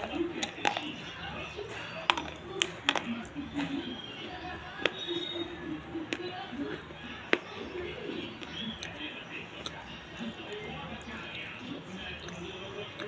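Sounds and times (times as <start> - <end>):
chewing and crunching snack: 0.0 - 13.0.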